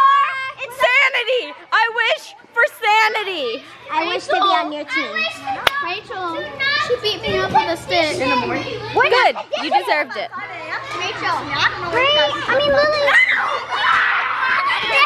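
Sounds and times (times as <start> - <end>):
girls talking and calling out: 0.0 - 15.0.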